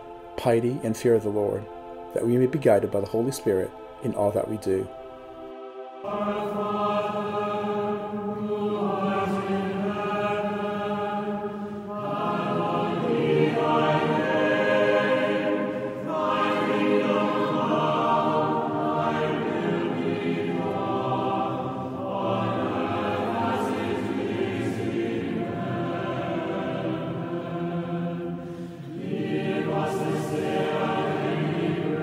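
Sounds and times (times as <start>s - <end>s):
choir singing held chords: 0.0s - 32.0s.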